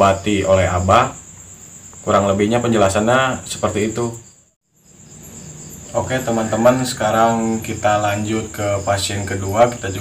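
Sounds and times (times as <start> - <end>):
crickets trilling: 0.0 - 10.0
man's voice: 5.9 - 10.0.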